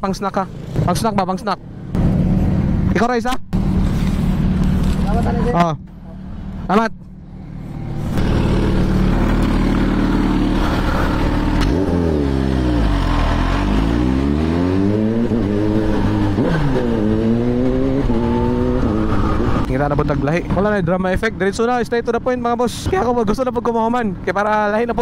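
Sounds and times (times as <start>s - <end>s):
motorcycle engine accelerating: 0.4s - 20.8s.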